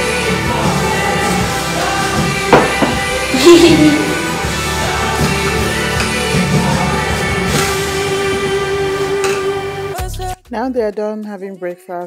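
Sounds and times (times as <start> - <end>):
background song with held note: 0.0 - 12.0.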